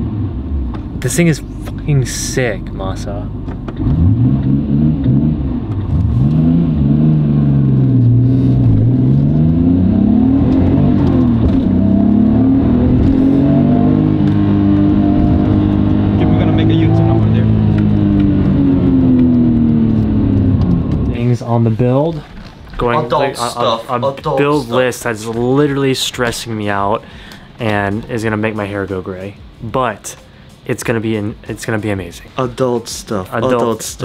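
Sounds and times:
car engine accelerating hard: 0.0 - 22.0.

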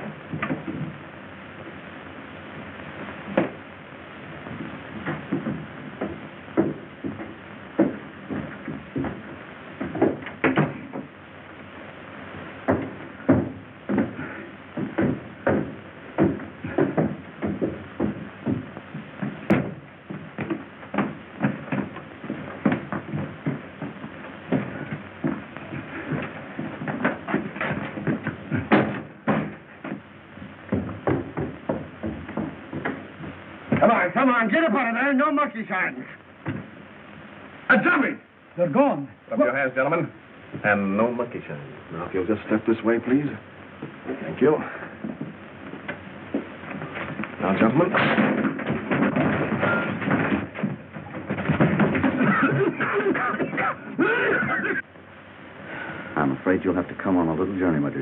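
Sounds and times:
irregular knocks and thumps: 0.0 - 1.2, 3.0 - 11.2, 12.6 - 34.1, 36.4 - 37.4, 43.7 - 54.9.

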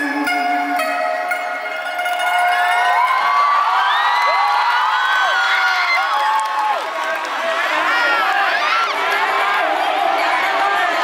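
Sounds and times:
crowd cheering and shouting: 1.5 - 11.0.

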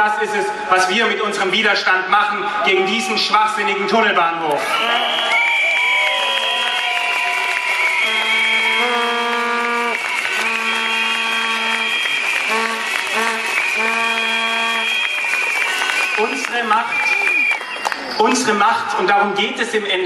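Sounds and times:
whistle-like tones: 4.6 - 19.0
horn blasts: 6.6 - 18.0.

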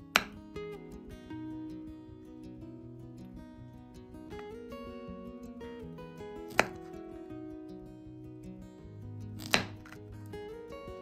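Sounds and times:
acoustic guitar music: 0.0 - 11.0
knife chopping on cutting board: 9.4 - 10.0.

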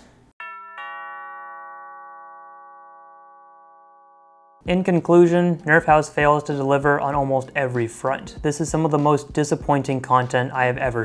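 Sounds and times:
two-note doorbell chime: 0.4 - 4.6.

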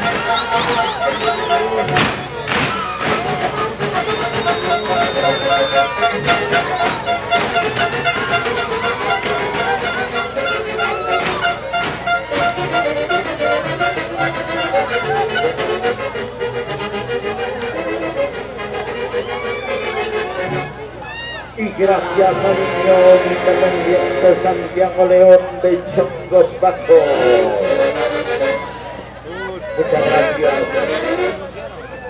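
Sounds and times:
band playing dance tune with saxophones: 0.0 - 32.0.

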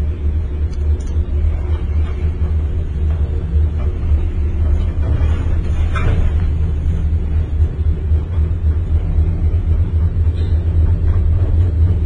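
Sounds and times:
gondola cabin rumbling on cable: 0.0 - 12.0.

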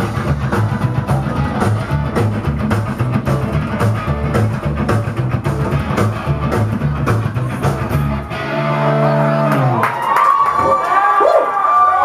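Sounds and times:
rock band playing live: 0.0 - 9.8.

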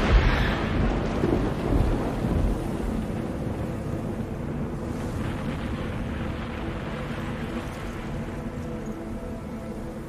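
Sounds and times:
deep noisy rumble: 0.0 - 10.0.

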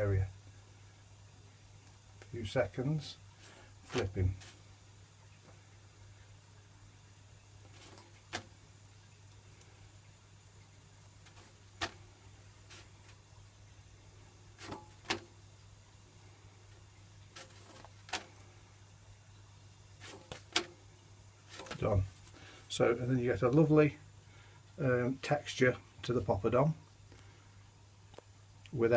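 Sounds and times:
rustle and clatter: 7.4 - 8.8, 11.0 - 13.3, 14.5 - 15.4, 16.2 - 18.7, 20.0 - 22.4.

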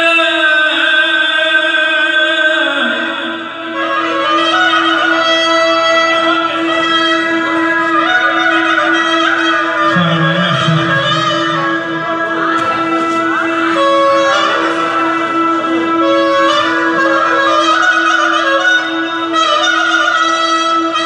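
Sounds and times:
accordion folk dance music: 9.9 - 15.8.

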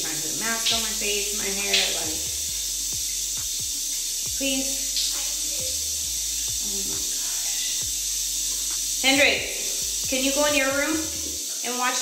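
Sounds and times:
shower water spraying: 0.0 - 12.0.

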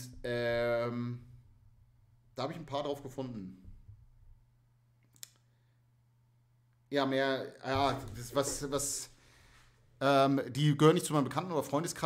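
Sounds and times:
man speaking: 0.0 - 1.3, 2.4 - 3.7, 6.9 - 9.2, 10.0 - 12.0.

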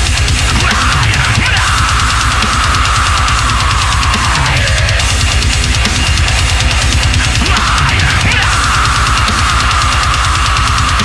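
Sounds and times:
bass: 0.0 - 11.0
distorted electric guitar riff: 0.0 - 11.0
programmed drums: 0.0 - 11.0.

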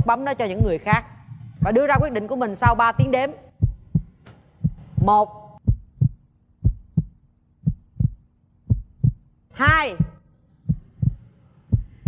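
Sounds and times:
heartbeat thumps: 0.0 - 12.0.

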